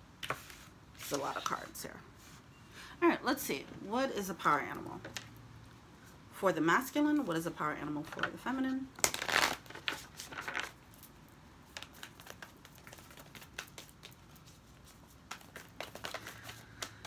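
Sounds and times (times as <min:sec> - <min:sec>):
cards riffling: 0:09.0 - 0:11.1, 0:11.7 - 0:17.0
cards clicking and tapping: 0:11.7 - 0:14.6, 0:15.3 - 0:17.0.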